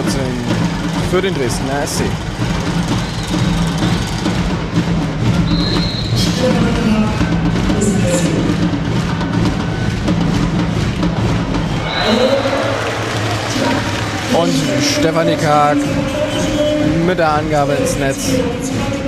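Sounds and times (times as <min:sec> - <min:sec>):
crowd noise: 0:00.0 - 0:19.0
music and drumming: 0:00.0 - 0:19.0
short high whistle: 0:05.4 - 0:06.2.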